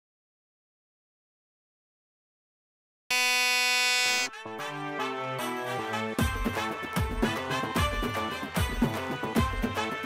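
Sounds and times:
steady buzzer tone: 3.1 - 4.4.

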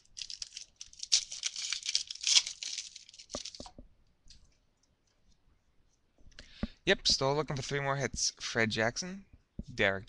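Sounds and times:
wrapper tearing and crinkling: 0.0 - 3.7.

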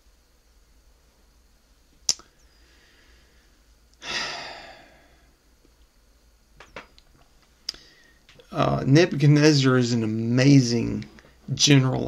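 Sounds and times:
sharp click: 2.1 - 2.3
man sighing: 4.0 - 5.3.

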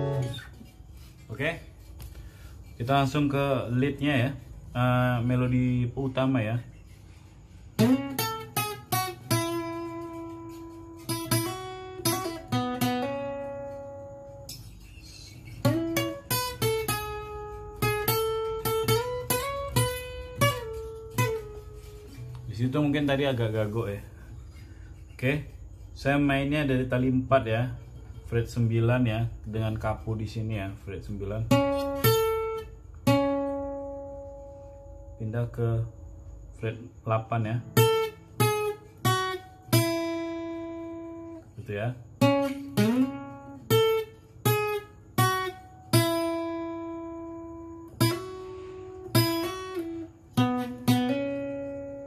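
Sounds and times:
acoustic guitar melody: 0.0 - 52.0.

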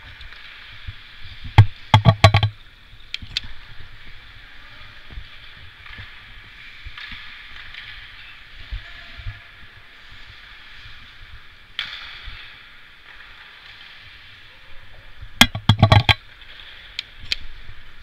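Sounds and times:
hiss of play on ice: 0.0 - 1.5, 3.5 - 15.4
sharp knocks and thumps: 1.5 - 2.6, 15.4 - 16.2.

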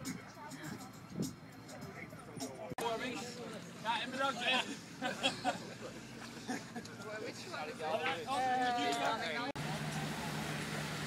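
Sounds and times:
wind noise: 0.0 - 2.7
boat engine hum: 1.5 - 11.0
water wash: 9.6 - 11.0.

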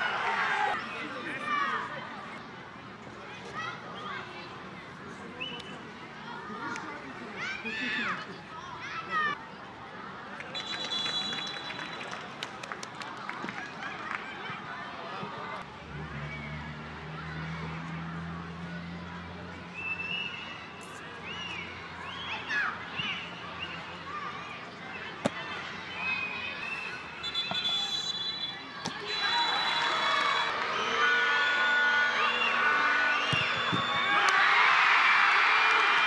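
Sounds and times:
crowd noise: 0.0 - 36.0
open-air stadium ambience: 0.0 - 36.0
footballers calling out: 13.4 - 36.0.

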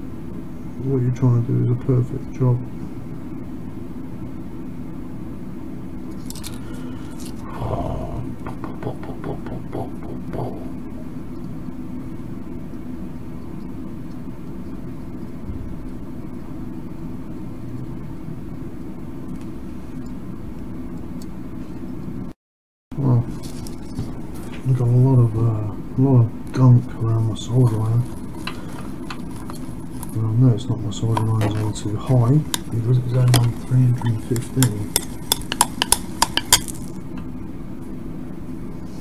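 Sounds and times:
steady low hum: 0.0 - 39.0
light scrapes and clicks: 27.6 - 30.2.

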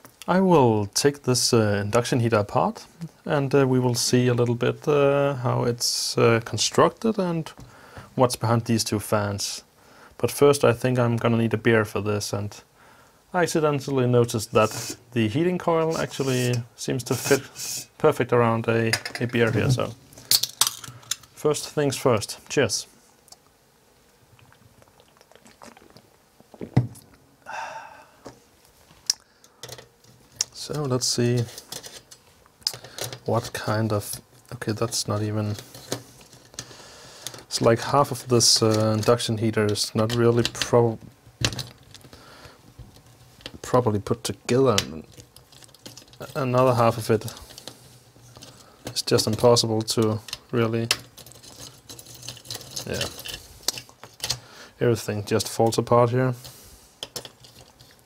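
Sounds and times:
person drinking and swallowing: 24.4 - 27.2
plastic and metal parts rattling: 29.6 - 29.9, 30.5 - 34.2, 41.4 - 42.1, 45.0 - 54.4, 57.0 - 58.0.

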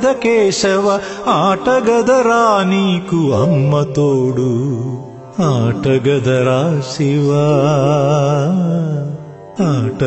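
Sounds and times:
person singing devotional song: 0.0 - 10.0
light accompaniment: 3.3 - 4.4.

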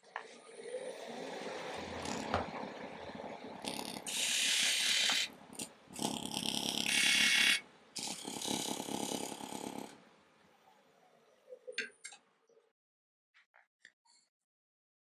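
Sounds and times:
pencil scratching on wood: 4.0 - 5.7.

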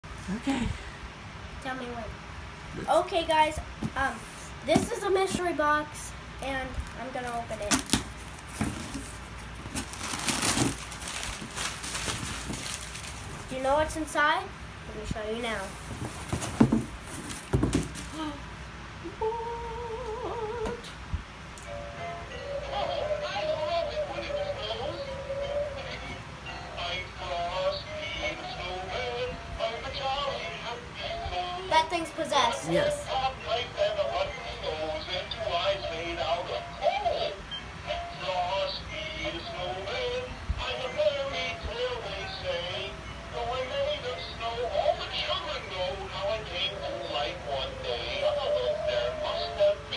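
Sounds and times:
cardboard and paper rustling: 6.7 - 13.9, 15.4 - 18.2
box knocks: 16.0 - 18.1
toy singing through small speaker: 21.7 - 49.9.

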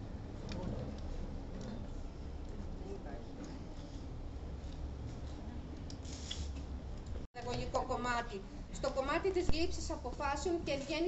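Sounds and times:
low steady background hum: 0.0 - 11.0.

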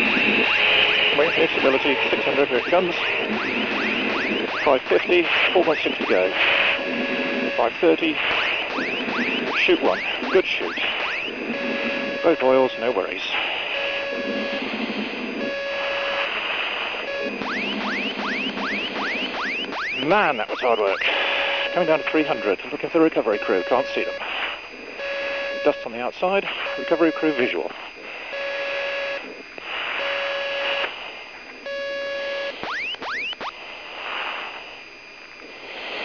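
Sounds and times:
radio hiss: 0.0 - 36.0
electronic beep: 17.1 - 22.6, 23.3 - 24.2.

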